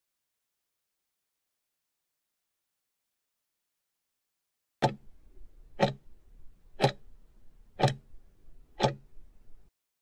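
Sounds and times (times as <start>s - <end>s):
timer clock ticking: 4.8s - 6.2s, 6.8s - 7.1s, 7.7s - 9.2s.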